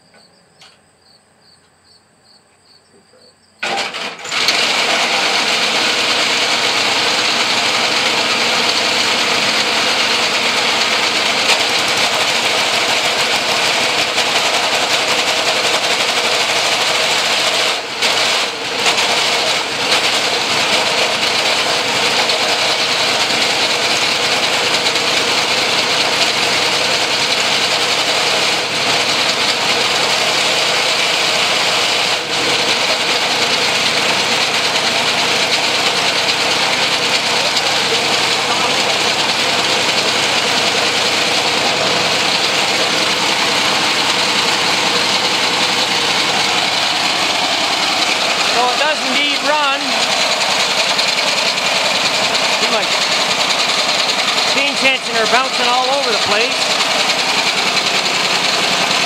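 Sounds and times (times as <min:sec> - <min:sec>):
small engines clattering: 0:03.6 - 0:59.0.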